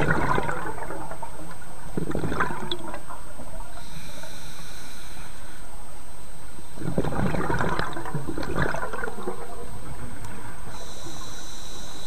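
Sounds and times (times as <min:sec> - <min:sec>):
air bubbling from regulator: 0:00.0 - 0:03.7, 0:06.8 - 0:11.4
underwater rush: 0:00.0 - 0:04.4, 0:06.8 - 0:12.0.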